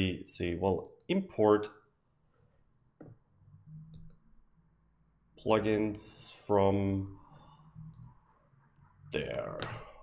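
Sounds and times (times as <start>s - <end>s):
computer mouse clicks: 3.9s - 4.3s, 7.0s - 7.3s, 7.9s - 8.2s.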